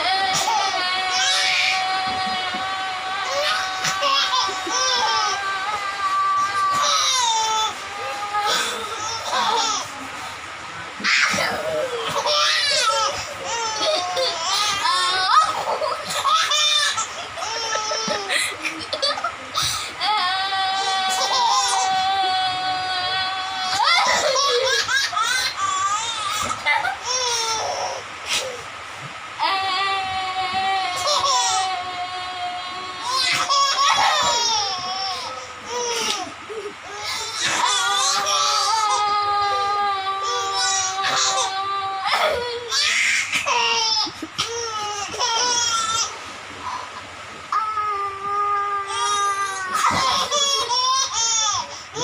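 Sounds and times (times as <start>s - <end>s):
boy laughing: 0.3s - 10.0s, 11.1s - 19.8s, 20.8s - 25.2s, 32.9s - 45.6s
baby giggling: 11.0s - 19.8s.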